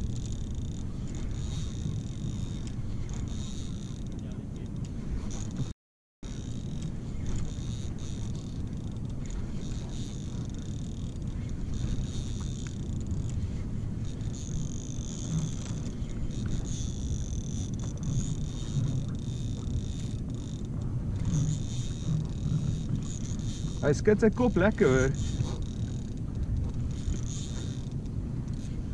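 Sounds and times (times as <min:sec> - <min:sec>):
spinning reel whine: 0:00.0 - 0:28.9
wind rumble on microphone: 0:00.0 - 0:28.9.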